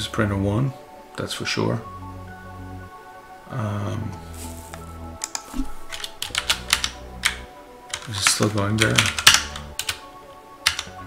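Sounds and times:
background music: 0.0s - 11.0s
keyboard keys clicking: 4.7s - 10.0s, 10.6s - 11.0s.

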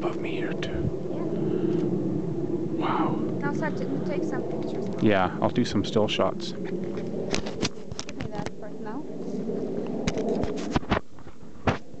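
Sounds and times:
indistinct low voices: 2.8s - 6.7s.

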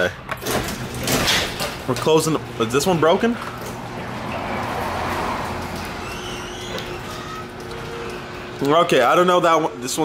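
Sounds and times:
garage door opener motor humming: 0.0s - 10.0s
garage door rolling in tracks: 0.4s - 8.6s.

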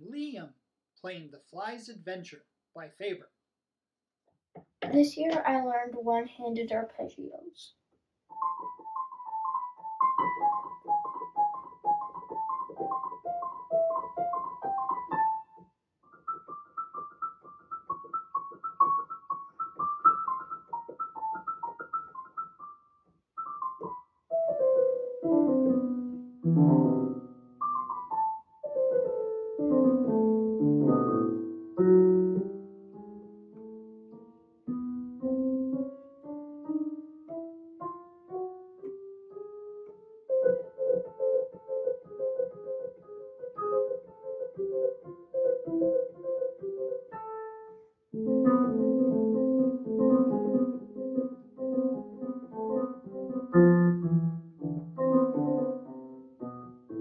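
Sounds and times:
solo digital piano: 8.3s - 57.0s.

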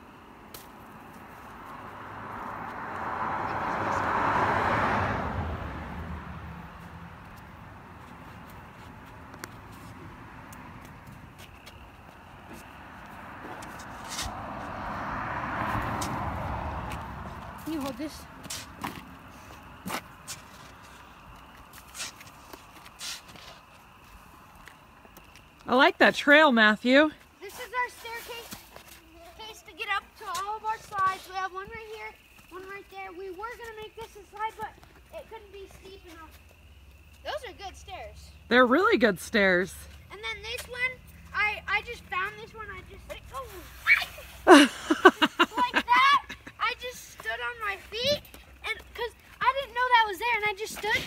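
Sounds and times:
car passing by: 1.2s - 22.4s
faint snow crunches: 27.1s - 36.4s.

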